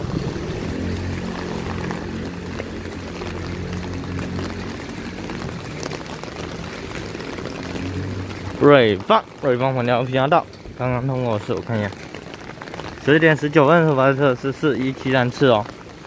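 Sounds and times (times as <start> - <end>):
rain on wet pavement: 0.0 - 16.0.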